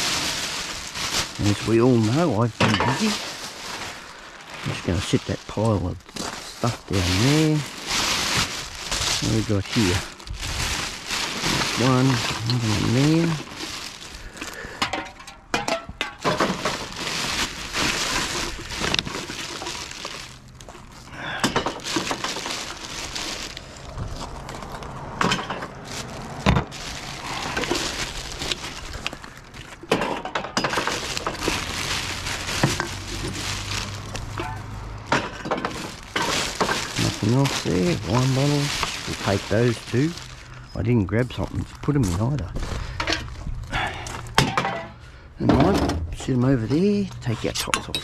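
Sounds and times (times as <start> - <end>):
plastic bag rustling: 0.0 - 44.8
glass bottles and cans clinking: 2.4 - 3.3, 14.7 - 17.5, 21.4 - 22.6, 29.9 - 31.7, 44.4 - 45.0.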